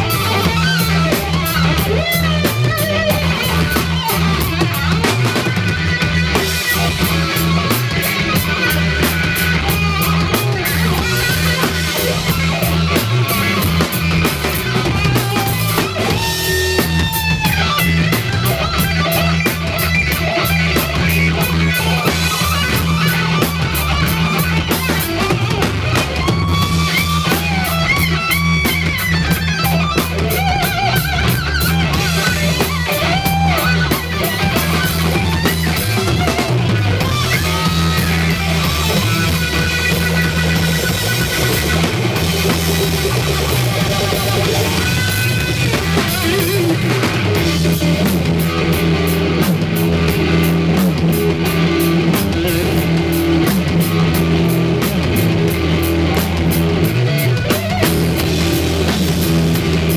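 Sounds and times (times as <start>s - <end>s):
drum kit: 0.0s - 59.9s
electric bass: 0.0s - 59.9s
electric guitar lead line: 0.0s - 59.9s.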